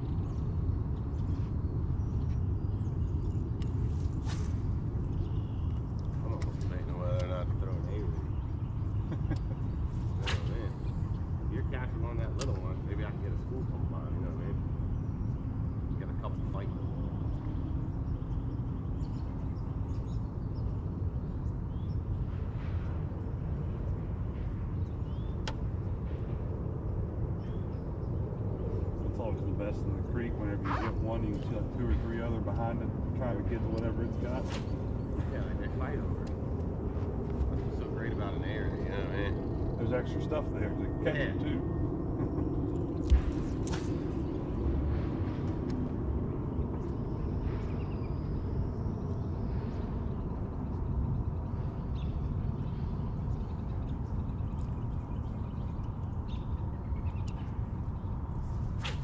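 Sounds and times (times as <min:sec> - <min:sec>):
wind and boat rumble: 0:00.0 - 0:59.0.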